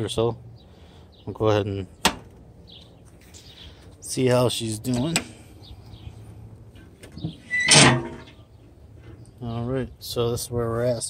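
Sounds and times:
metal hinges creaking: 6.8s - 9.2s.

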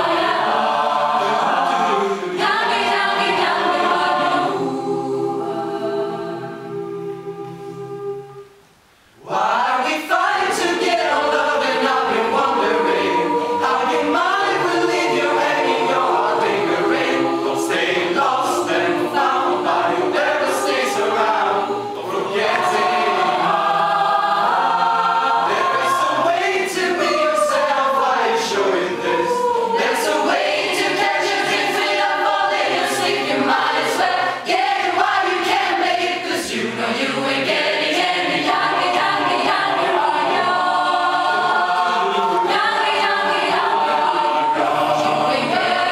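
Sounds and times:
mixed choir singing a cappella: 0.0s - 8.6s, 9.2s - 45.9s.

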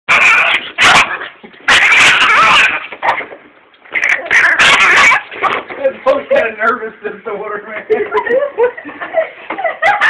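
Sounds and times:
puppy yapping: 0.1s - 3.3s, 3.9s - 5.7s.

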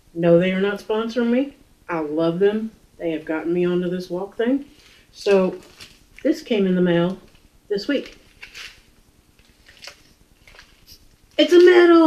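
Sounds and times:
plastic mailer crinkling: 5.3s - 6.2s, 7.0s - 12.0s.

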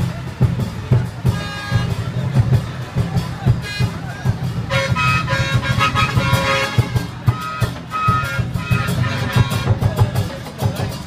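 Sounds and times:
drum beating fast rhythm: 0.0s - 11.0s.

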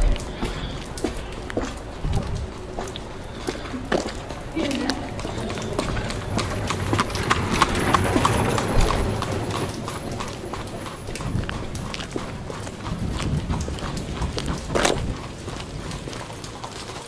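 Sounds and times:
horse hooves clip-clopping: 0.0s - 17.0s.

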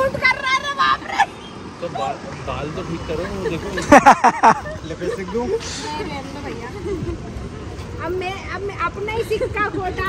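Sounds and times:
street traffic hum: 0.0s - 10.0s
women talking and laughing: 0.0s - 10.0s.

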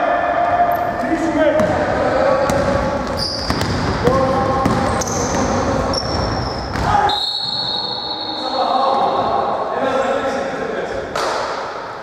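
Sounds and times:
basketball bouncing on hardwood: 2.5s - 3.9s, 4.6s - 5.5s.

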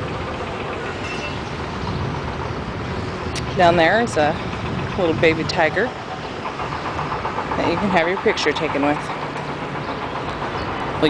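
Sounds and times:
outdoor hiss and rumble: 0.0s - 11.0s.

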